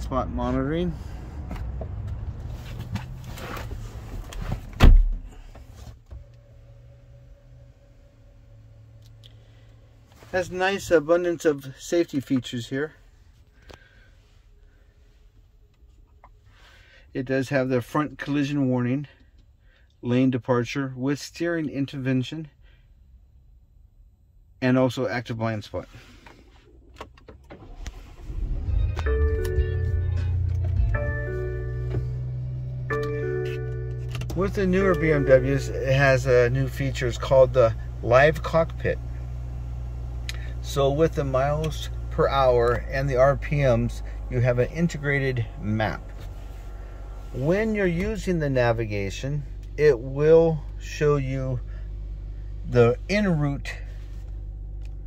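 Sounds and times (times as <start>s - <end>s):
car cabin hum: 0.0s - 16.4s, 26.5s - 55.0s
car door shutting thud: 4.4s - 6.2s.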